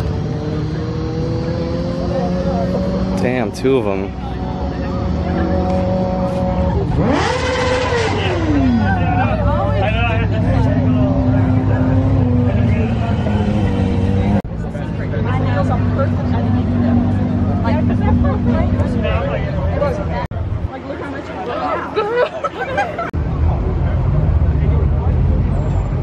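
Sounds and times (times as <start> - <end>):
car engine idling and revving: 0.0 - 20.8.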